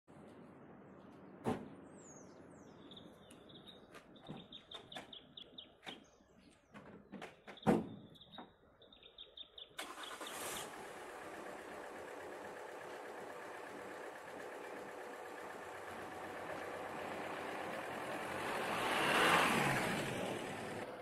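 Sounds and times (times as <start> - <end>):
van driving past: 9.8 - 21.0.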